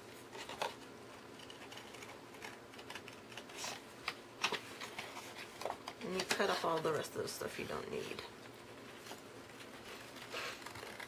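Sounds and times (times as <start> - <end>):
scissors cutting paper: 1.4 - 3.8, 10.2 - 11.0.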